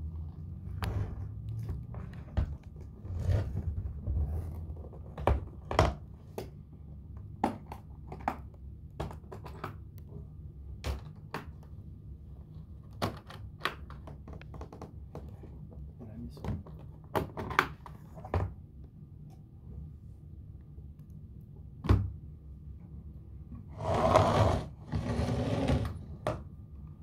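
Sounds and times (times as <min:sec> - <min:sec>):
guitar case scraping on tile floor: 0:00.8 - 0:04.9, 0:23.7 - 0:26.2.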